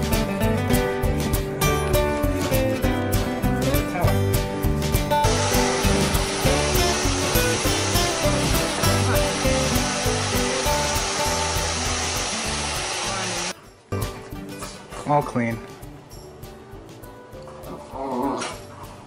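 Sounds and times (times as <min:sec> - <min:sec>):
background music with a beat: 0:00.0 - 0:19.0
hair dryer blowing: 0:05.2 - 0:13.6.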